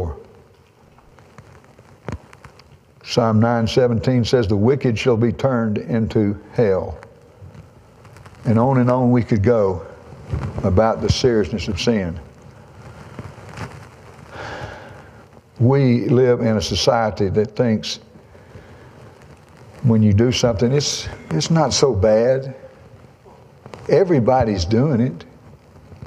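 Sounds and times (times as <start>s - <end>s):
faint clicks: 0.2s - 2.8s
short breath in: 14.3s - 15.2s.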